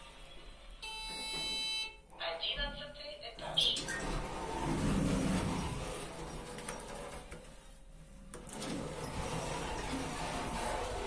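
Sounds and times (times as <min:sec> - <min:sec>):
lift car rushing noise: 0:03.6 - 0:07.3, 0:08.4 - 0:11.0.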